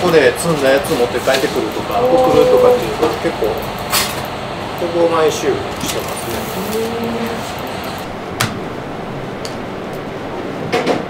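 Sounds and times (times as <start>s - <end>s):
kitchen ventilation rushing noise: 0.0s - 11.0s.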